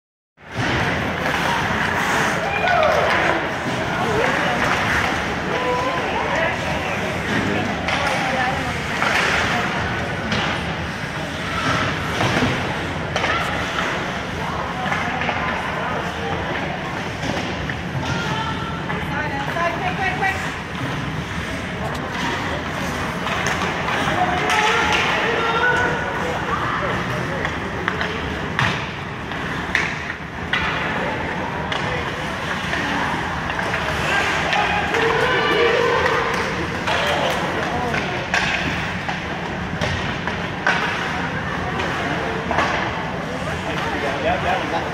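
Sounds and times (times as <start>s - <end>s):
hockey sticks and puck clacking: 0.5s - 44.9s
voices calling out in rink: 0.5s - 44.9s.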